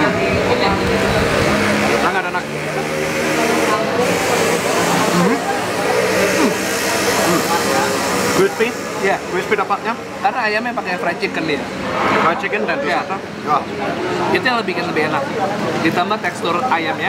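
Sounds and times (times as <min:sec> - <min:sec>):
dining room chatter: 0:00.0 - 0:17.0.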